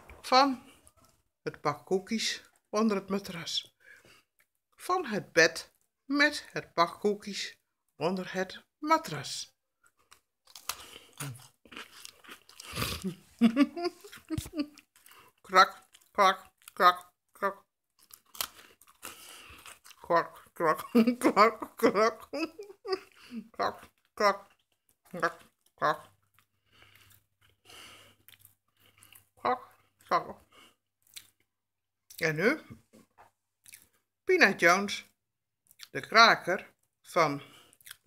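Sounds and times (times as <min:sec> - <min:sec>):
cookie crunching: 0:09.8 - 0:30.2.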